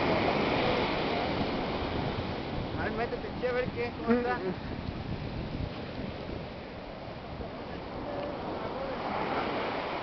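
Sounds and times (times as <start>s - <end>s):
ocean surf on beach: 0.0s - 10.0s.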